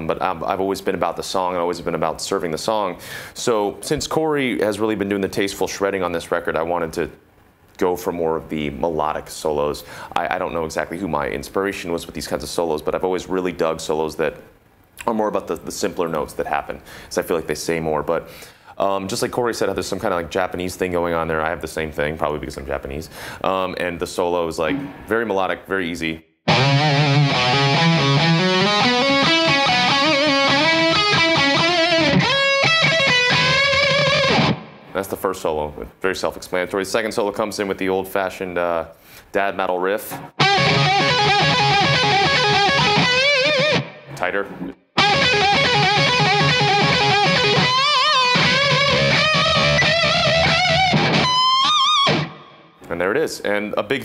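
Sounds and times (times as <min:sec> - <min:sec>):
distorted electric guitar solo: 0:26.5 - 0:34.9, 0:40.4 - 0:44.2, 0:45.0 - 0:52.7.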